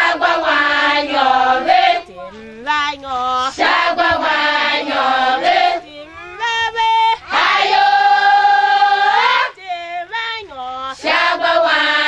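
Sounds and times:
women singing a chant-like song: 0:00.0 - 0:12.0.

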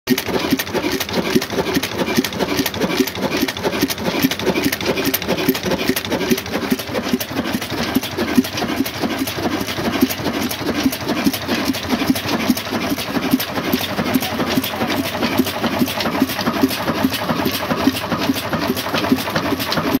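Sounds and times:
diesel engine running: 0:00.1 - 0:20.0
valve gear clatter: 0:00.1 - 0:20.0.

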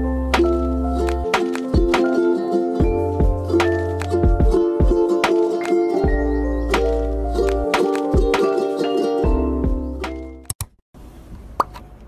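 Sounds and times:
background music: 0:00.0 - 0:10.5.

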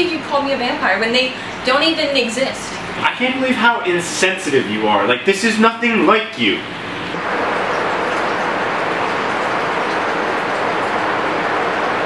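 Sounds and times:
steady rushing noise: 0:06.6 - 0:12.0.

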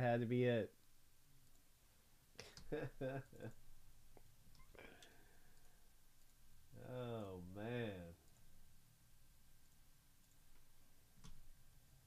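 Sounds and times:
faint breath: 0:04.7 - 0:05.9.

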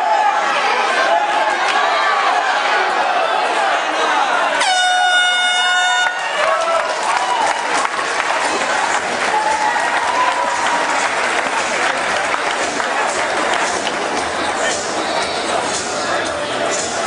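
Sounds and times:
crowd shouting and cheering: 0:00.0 - 0:17.0
air horn blast: 0:04.6 - 0:06.2.

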